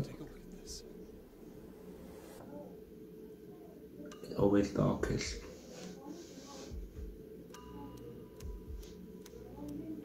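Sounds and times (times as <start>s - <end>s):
soft hiss: 3.6s - 9.9s.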